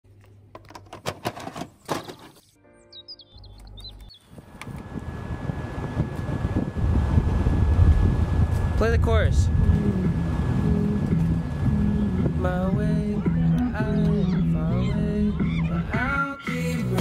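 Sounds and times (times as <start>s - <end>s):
handling clicks and rustles: 0.1s - 2.6s
wind noise with low rumble: 4.2s - 13.9s.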